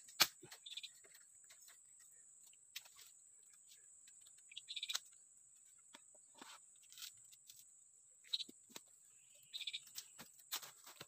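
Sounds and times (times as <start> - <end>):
bird chirps: 0.0 - 5.2, 8.2 - 10.2.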